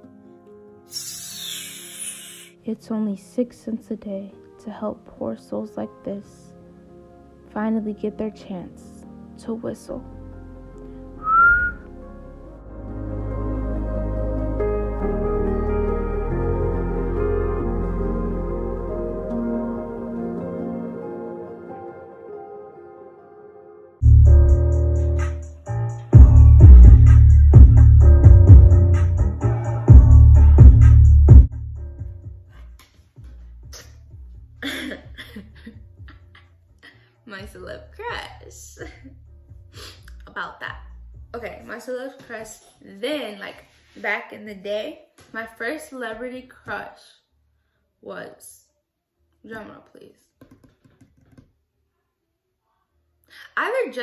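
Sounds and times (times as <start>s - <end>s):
soft background music: 0.0s - 47.0s
person whistling short rising note: 0.9s - 2.5s, 11.2s - 11.9s
girl laughing: 34.6s - 36.4s.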